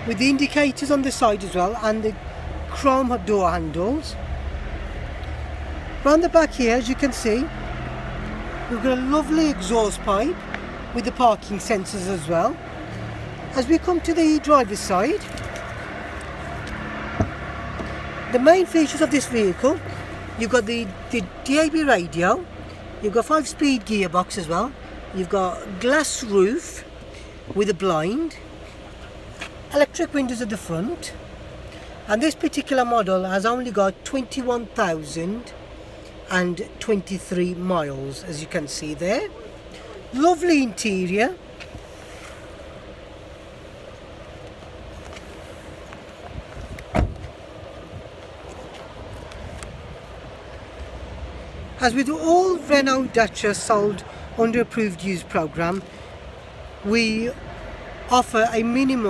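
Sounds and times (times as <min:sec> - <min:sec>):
steady low outdoor hum: 0:00.0 - 0:59.0
car door latch click: 0:46.8 - 0:47.3.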